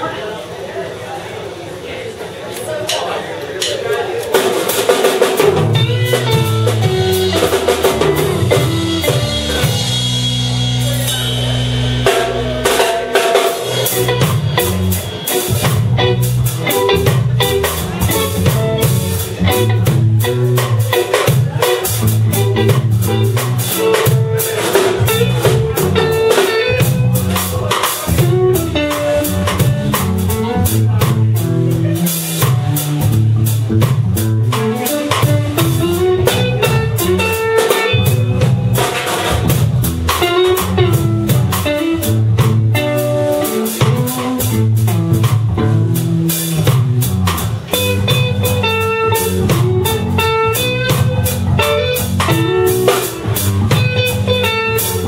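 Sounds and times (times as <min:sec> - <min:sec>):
drum kit: 0:02.9 - 0:55.0
electric guitar: 0:04.7 - 0:55.0
electric bass line: 0:05.3 - 0:55.0.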